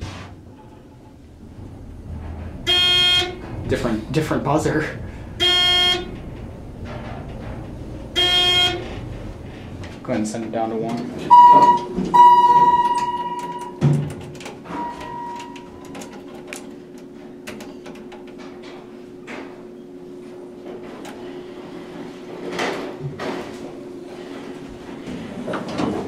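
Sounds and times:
elevator doors thudding shut: 0.0s - 10.1s, 11.0s - 16.5s
elevator running hum: 0.0s - 26.0s
elevator buzzer beeping: 2.6s - 3.5s, 5.4s - 6.3s, 8.1s - 9.0s, 11.3s - 13.8s, 14.6s - 16.2s.

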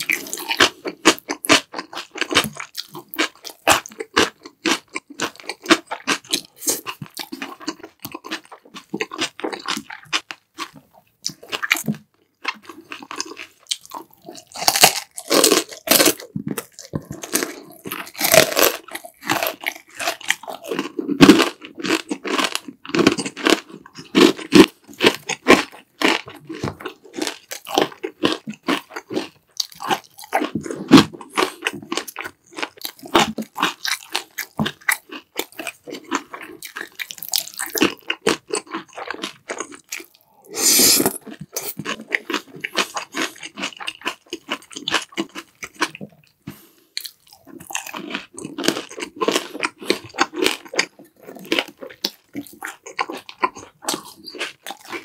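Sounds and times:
crunching crispy fried pork: 0.0s - 55.0s
person chewing noodles: 0.0s - 55.0s.

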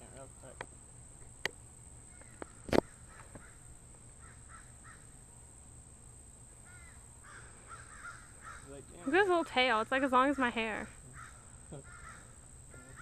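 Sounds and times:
high insect drone: 0.0s - 13.0s
distant birds calling: 0.6s - 13.0s.

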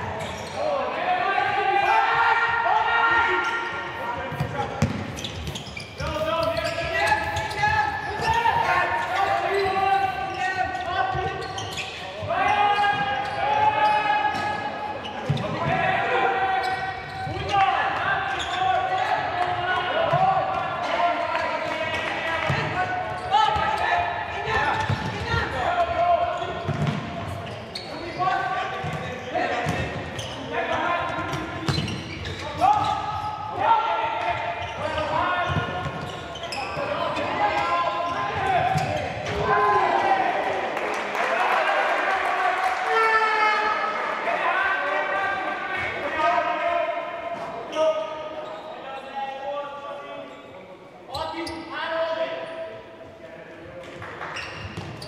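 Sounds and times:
voices shouting in a hall: 0.0s - 55.0s.

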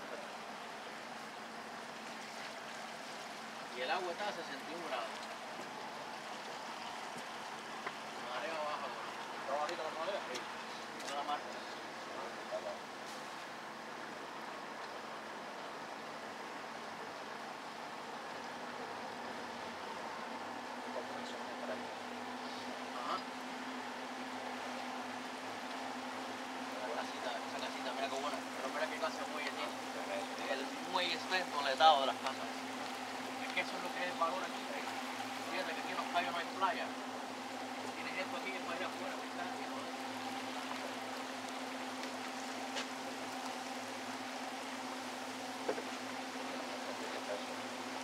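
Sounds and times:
boat engine humming: 0.0s - 48.0s
hiss of water and air: 12.9s - 17.6s.

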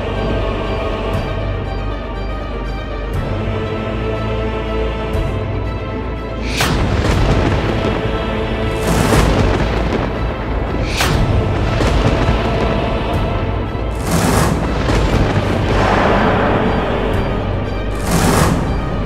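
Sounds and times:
dramatic score low drone: 0.0s - 19.0s
deep hits: 6.4s - 19.0s.

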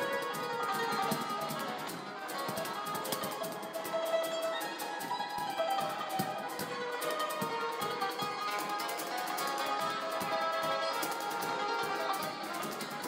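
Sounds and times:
cajon thumps: 0.0s - 13.0s
hammered dulcimer notes: 0.0s - 13.0s.

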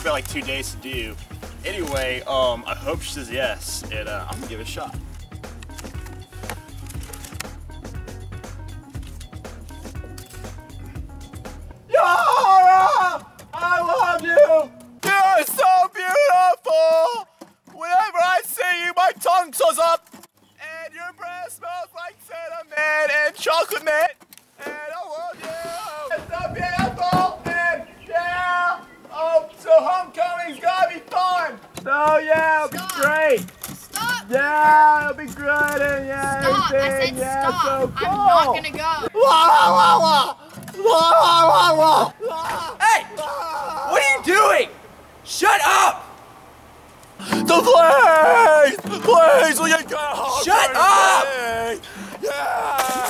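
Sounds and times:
wind buffeting microphone: 26.1s - 28.5s, 35.0s - 39.1s.

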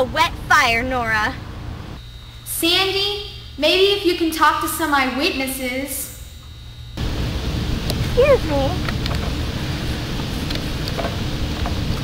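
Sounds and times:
outdoor low rumble and hiss: 0.0s - 12.0s.

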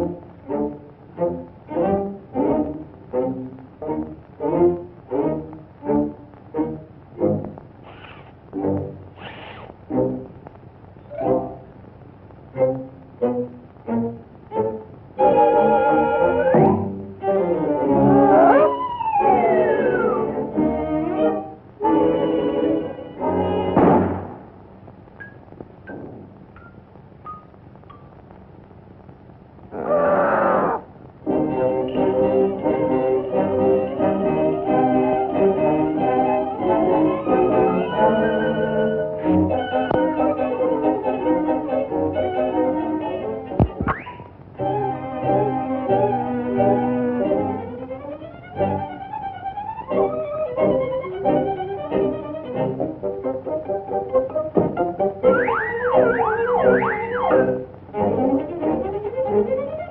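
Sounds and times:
cartoon jazz band music: 0.0s - 10.3s, 11.1s - 11.7s, 12.6s - 24.4s, 31.2s - 59.9s
short high pips: 7.8s - 8.4s, 9.2s - 9.8s.

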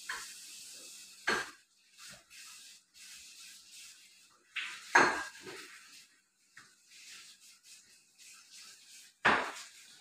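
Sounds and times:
cookware clattering on stovetop: 1.2s - 1.6s, 4.6s - 5.6s.

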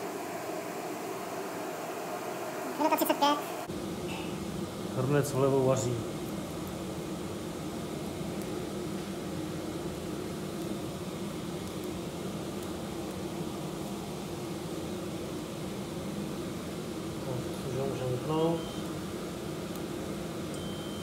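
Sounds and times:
induction hob hum and hiss: 0.0s - 21.0s
water boiling in a pot: 0.0s - 21.0s.

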